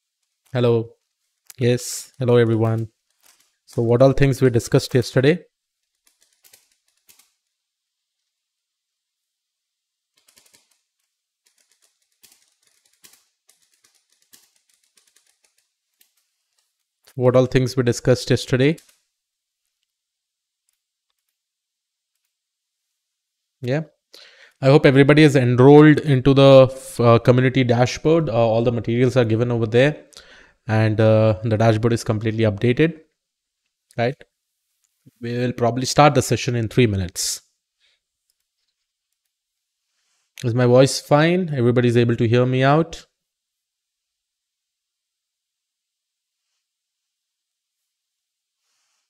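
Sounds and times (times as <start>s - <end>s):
typing on computer keyboard: 5.9s - 7.4s, 10.2s - 16.2s.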